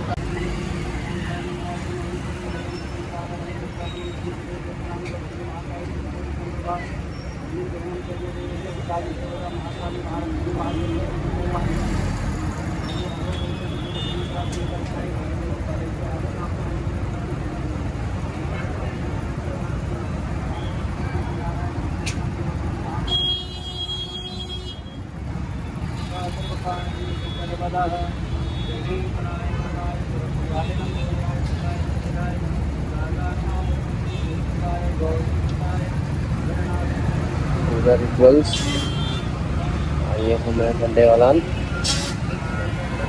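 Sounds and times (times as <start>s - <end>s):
road traffic rumble: 0.0s - 43.0s.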